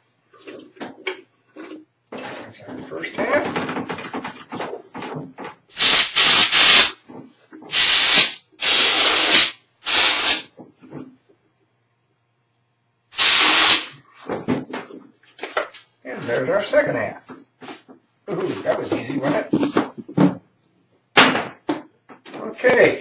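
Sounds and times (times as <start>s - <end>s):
knocks and scrapes of mold: 0.4s - 5.7s
air blow gun hissing: 5.8s - 7.0s, 7.7s - 10.5s, 13.2s - 14.0s.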